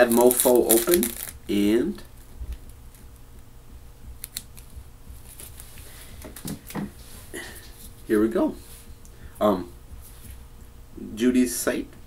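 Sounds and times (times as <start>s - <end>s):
clicks and rustles of gloved hands: 0.0s - 1.4s, 4.2s - 7.0s.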